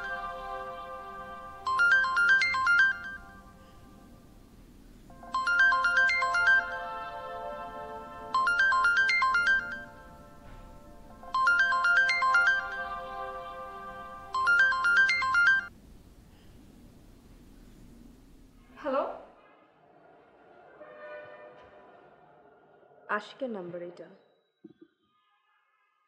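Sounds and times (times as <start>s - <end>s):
chiming phone ringtone: 1.6s - 3.6s, 5.1s - 7.5s, 8.2s - 10.4s, 11.2s - 15.7s.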